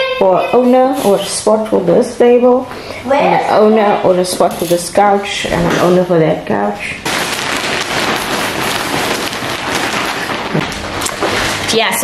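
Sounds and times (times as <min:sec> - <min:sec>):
crackling hiss: 0:06.9 - 0:12.0.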